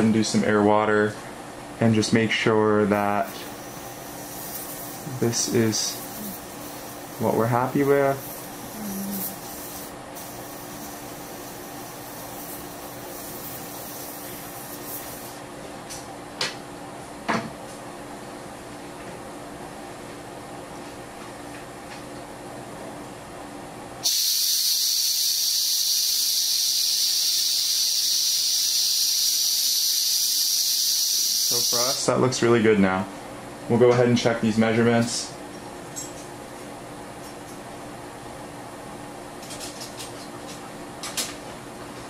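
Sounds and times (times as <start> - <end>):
compressed air hissing: 3.2 - 15.4, 24.0 - 32.0.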